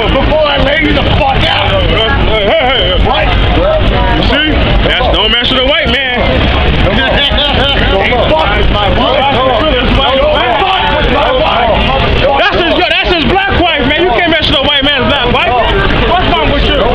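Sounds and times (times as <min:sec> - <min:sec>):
street traffic rumble: 0:00.0 - 0:16.9
voices talking: 0:00.0 - 0:16.9.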